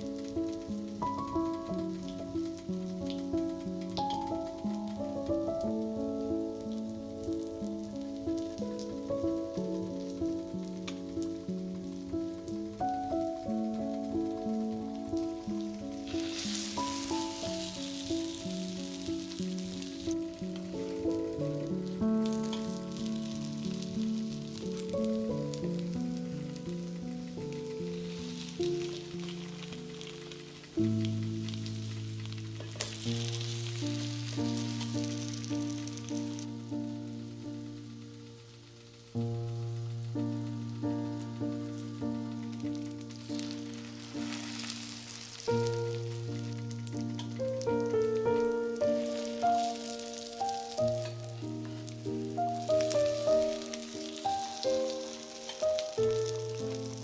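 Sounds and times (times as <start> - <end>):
background music: 0.0 - 57.0
food sizzling in oil: 0.0 - 57.0.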